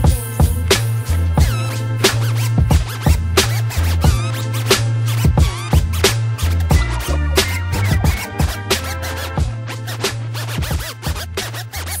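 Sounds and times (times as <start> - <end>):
bass line: 0.0 - 12.0
turntable scratches: 0.0 - 12.0.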